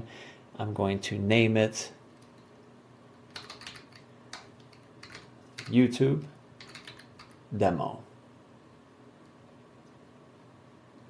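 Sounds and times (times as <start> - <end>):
faint keyboard keystrokes: 3.3 - 5.8, 6.6 - 7.4.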